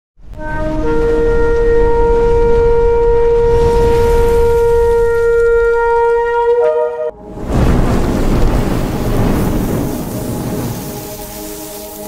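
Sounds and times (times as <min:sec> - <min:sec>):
low rumble: 0:00.2 - 0:06.3, 0:07.1 - 0:11.5
ram's horn long note: 0:00.3 - 0:07.9.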